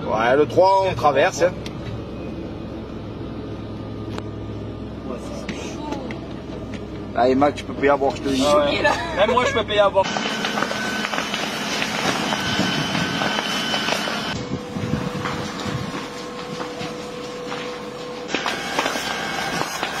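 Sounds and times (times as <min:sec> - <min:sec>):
wildfire roaring with crackles: 0:10.1 - 0:20.0.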